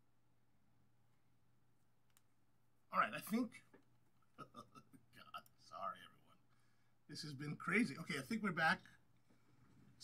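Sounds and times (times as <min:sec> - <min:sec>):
faint click: 0:02.0 - 0:02.3
man speaking: 0:02.9 - 0:03.8, 0:04.4 - 0:09.0.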